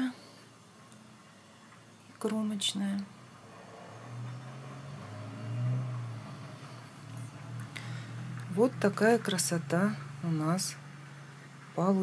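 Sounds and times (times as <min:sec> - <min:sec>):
low droning hum: 0:03.1 - 0:12.0.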